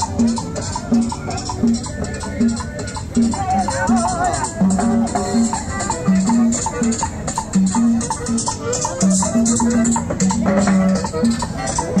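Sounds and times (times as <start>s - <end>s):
shaker keeping time: 0.0s - 12.0s.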